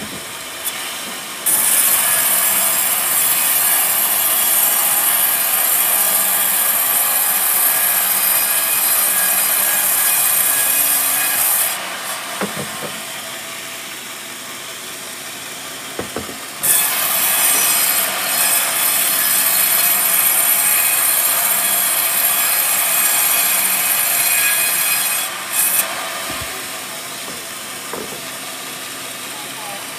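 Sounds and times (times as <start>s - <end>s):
band saw cutting wood: 0.0s - 14.0s, 15.4s - 29.9s
sawmill machine running: 0.0s - 29.9s.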